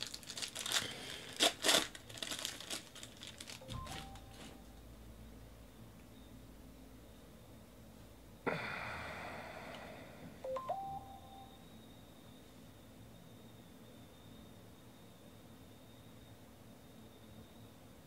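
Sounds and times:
electronic beep rising in pitch: 3.6s - 4.6s, 10.5s - 11.6s.

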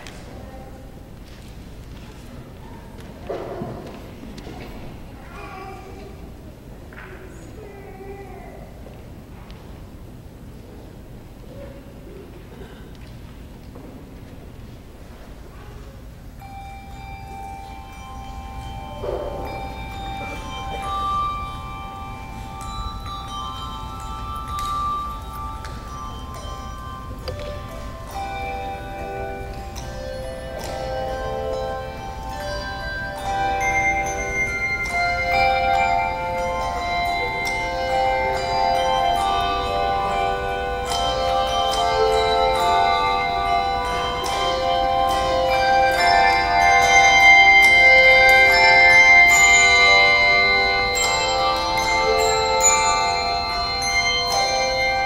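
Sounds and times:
handbells ringing: 16.3s - 55.0s.

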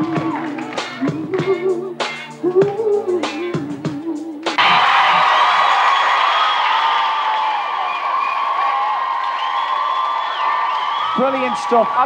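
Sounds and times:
crowd cheering and screaming: 4.6s - 12.0s.

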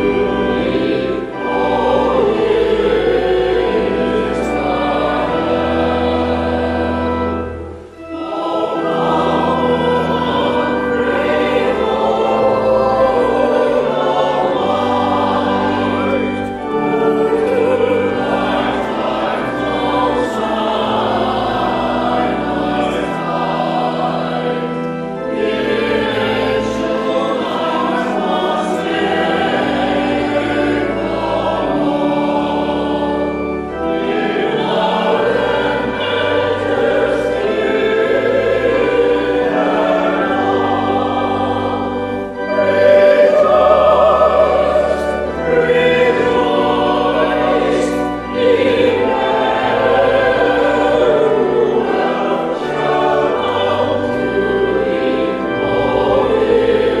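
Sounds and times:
choir singing a hymn: 0.0s - 57.0s
organ accompaniment: 0.0s - 57.0s.

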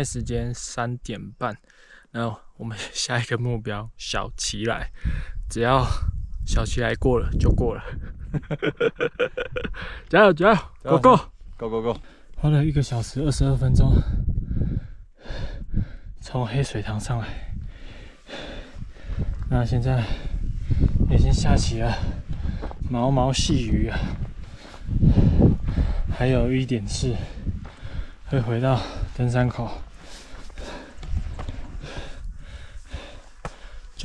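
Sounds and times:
person breathing heavily: 1.7s - 2.1s, 9.7s - 10.1s, 14.0s - 16.2s, 17.2s - 21.1s, 21.8s - 22.9s, 23.8s - 34.0s
low microphone rumble: 20.2s - 33.2s
footsteps on gravel: 22.2s - 25.0s, 26.5s - 32.2s.

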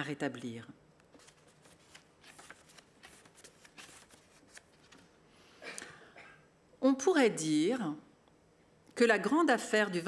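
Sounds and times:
paper pages rustling: 1.1s - 5.2s.

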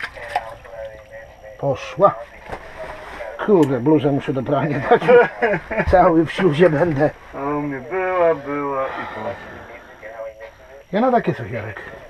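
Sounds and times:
man talking quietly: 0.0s - 12.0s.

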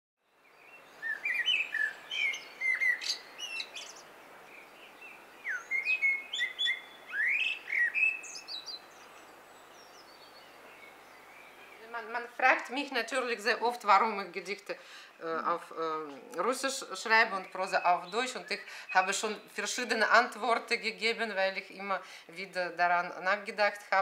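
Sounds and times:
faint outdoor hiss: 0.2s - 24.0s
songbirds singing: 0.2s - 24.0s.

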